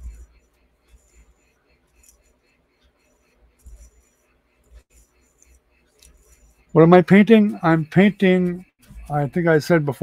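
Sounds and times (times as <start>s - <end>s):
low hum: 0.0s - 9.6s.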